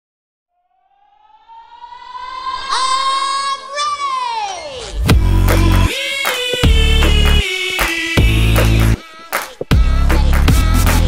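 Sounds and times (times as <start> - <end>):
siren-like synthesizer tone: 0.5 - 4.0
electronic dance music: 2.7 - 11.0.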